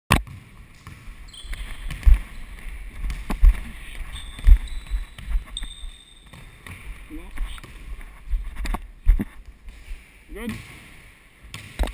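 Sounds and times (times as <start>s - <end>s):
basketball bouncing on wooden floor: 0.1s - 8.0s, 11.5s - 11.9s
high squeaks: 1.3s - 2.5s, 3.9s - 6.4s.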